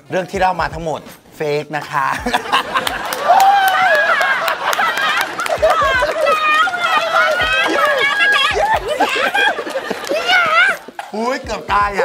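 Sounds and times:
people laughing and shrieking: 2.2 - 11.2.

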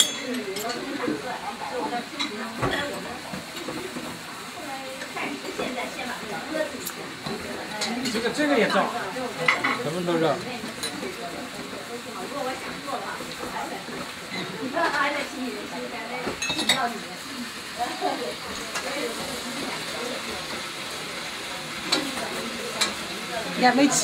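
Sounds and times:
dishes clinking: 0.0 - 1.2, 7.2 - 9.8, 14.3 - 15.0, 16.2 - 16.9
food sizzling in a pan: 0.0 - 24.0
murmured conversation: 0.0 - 24.0.

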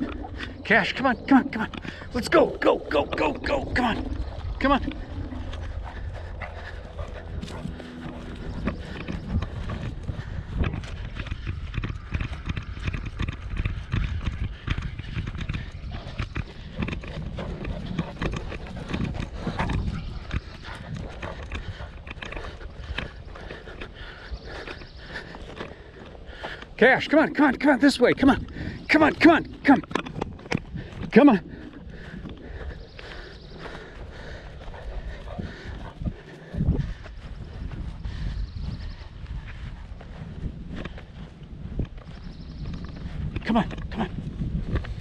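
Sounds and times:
footsteps on dry grass and dirt: 0.0 - 45.0
steady low rumble: 0.0 - 45.0.

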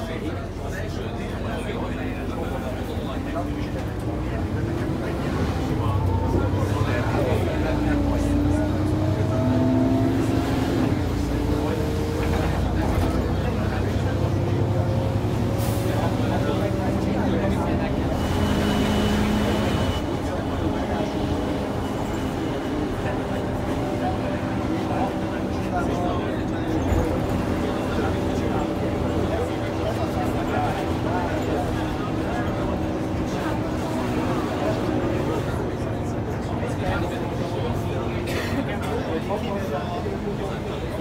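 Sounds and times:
bus diesel engine: 0.0 - 41.0.

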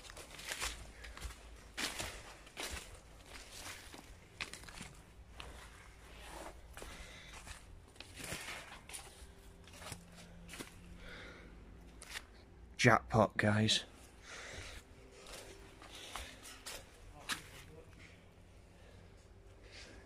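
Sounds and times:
footsteps on leaf litter: 0.0 - 10.9
rustling through undergrowth: 0.0 - 11.0.

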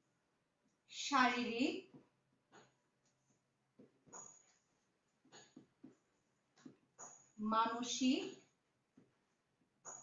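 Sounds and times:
marker writing on whiteboard: 1.4 - 10.0
marker squeak: 4.1 - 4.7, 7.0 - 7.4.

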